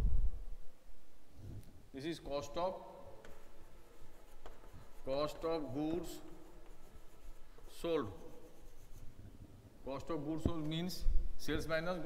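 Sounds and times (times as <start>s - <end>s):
chalk tapping on board: 3.2s - 9.1s
chalk scratching on blackboard: 3.2s - 9.4s.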